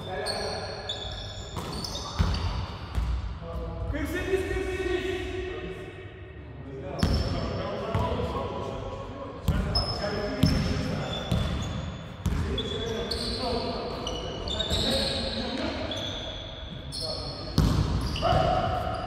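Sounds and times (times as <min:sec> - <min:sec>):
sneaker squeaks: 0:00.0 - 0:03.1, 0:07.0 - 0:07.5, 0:09.5 - 0:19.0.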